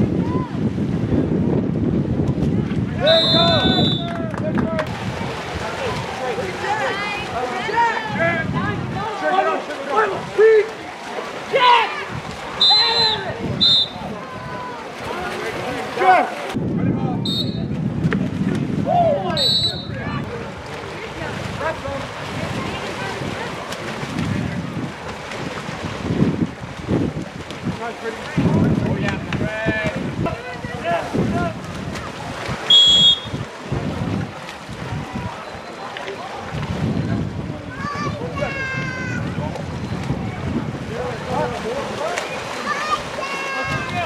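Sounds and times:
wind on microphone: 0.0s - 9.2s, 12.0s - 15.8s, 16.4s - 44.0s
spectators' voices: 2.3s - 18.0s, 18.6s - 44.0s
referee whistle blasts: 3.0s - 4.1s, 12.6s - 14.0s, 17.3s - 17.7s, 19.4s - 20.0s, 32.7s - 33.4s.

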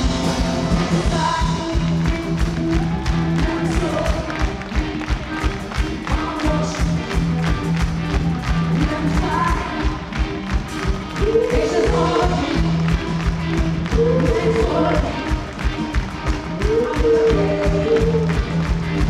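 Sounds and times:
keyboard notes: 0.0s - 2.8s
lead vocals singing: 0.0s - 10.0s, 11.1s - 13.0s, 13.7s - 15.6s, 16.5s - 18.6s
bass notes: 0.0s - 19.0s
drum beat: 0.0s - 19.0s.

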